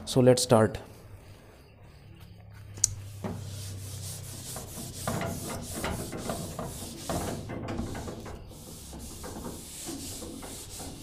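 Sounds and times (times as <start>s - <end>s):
sharp click: 2.8s - 3.0s
eraser rubbing whiteboard: 3.0s - 11.0s.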